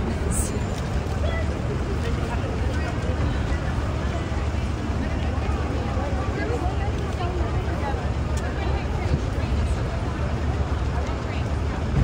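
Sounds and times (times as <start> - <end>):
crowd talking: 0.0 - 12.0
low street rumble: 0.0 - 12.0.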